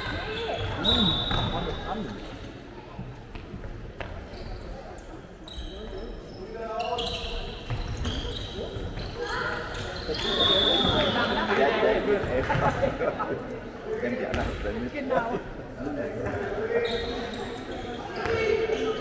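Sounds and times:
shoe squeaks: 0:00.3 - 0:02.5, 0:04.2 - 0:11.2, 0:16.6 - 0:19.0
ball bouncing on court floor: 0:14.3 - 0:14.6.

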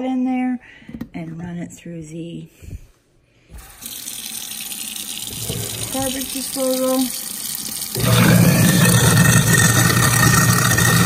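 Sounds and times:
faucet water running into drain: 0:03.6 - 0:11.0.

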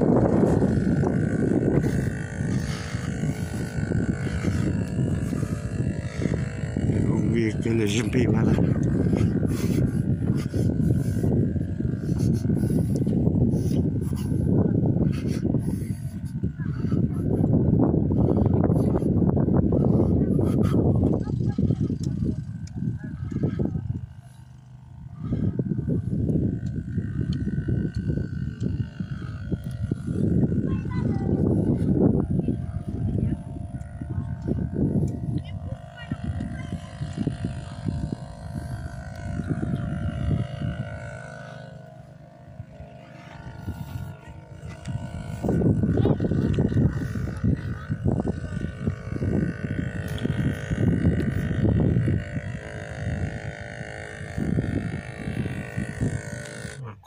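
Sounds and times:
wind buffeting a microphone: 0:00.0 - 0:57.0.

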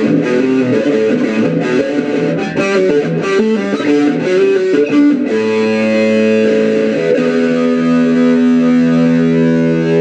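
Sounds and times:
electric guitar chord ringing: 0:00.0 - 0:10.0.

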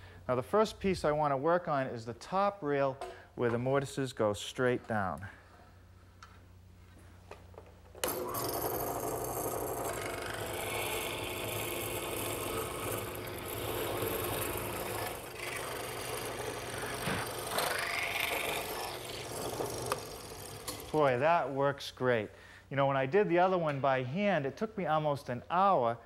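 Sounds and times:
drill press boring wood: 0:08.0 - 0:21.0.

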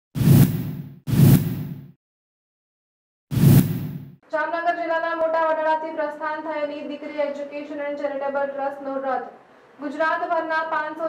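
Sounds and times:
whoosh sound effects: 0:00.2 - 0:01.9, 0:03.3 - 0:04.2.

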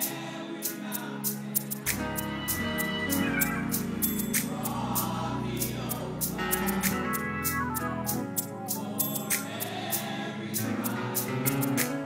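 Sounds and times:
sustained keyboard chords: 0:01.7 - 0:12.0
bass guitar: 0:06.0 - 0:08.6.

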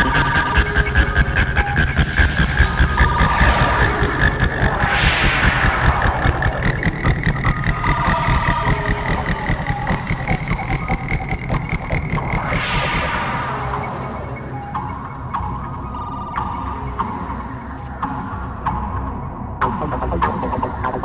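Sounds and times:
trance music: 0:00.0 - 0:17.8, 0:19.6 - 0:21.0
synth noise sweeps: 0:01.6 - 0:11.1, 0:11.8 - 0:15.3.

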